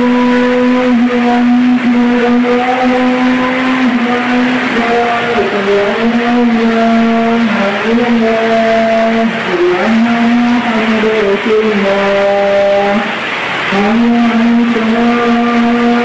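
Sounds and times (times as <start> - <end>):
heavy rain hissing: 0.0 - 16.0
loud droning tone: 0.0 - 16.0.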